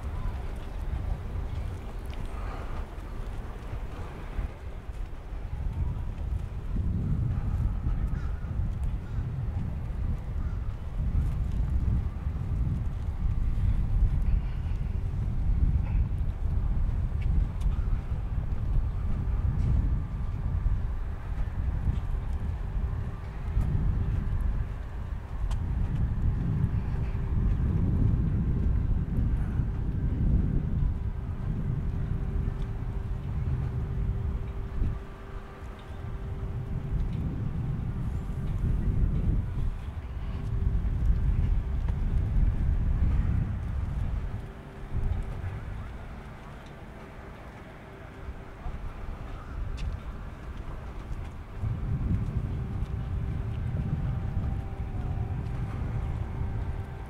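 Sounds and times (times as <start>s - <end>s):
faint steady hum: 0.0s - 57.0s
wind buffeting microphone: 0.0s - 57.0s.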